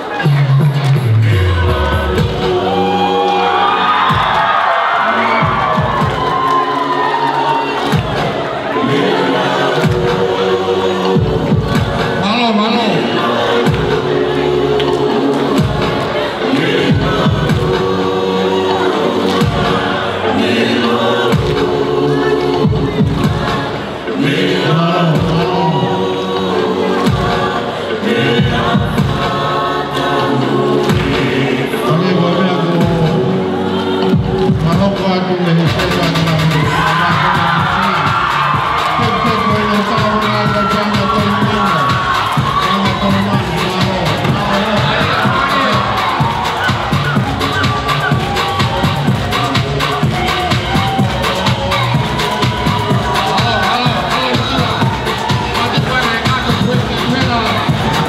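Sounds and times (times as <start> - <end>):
crowd cheering and whooping: 0.0 - 9.9, 36.3 - 58.0
choir singing: 0.0 - 34.8, 35.8 - 58.0
live dance music: 0.0 - 58.0.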